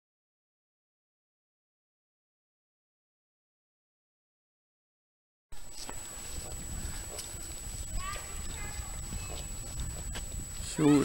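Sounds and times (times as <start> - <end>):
wind rumble on microphone: 5.6 - 11.0
distant high-pitched voices calling: 5.7 - 11.0.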